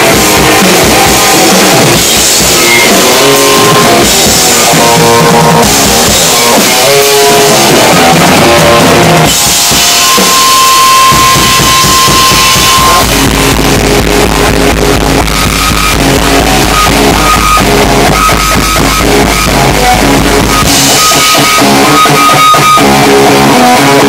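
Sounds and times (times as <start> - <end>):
heavy low guitar riff: 0.0 - 24.0
rock band playing loudly: 0.0 - 24.0
steady drumming: 0.0 - 24.0.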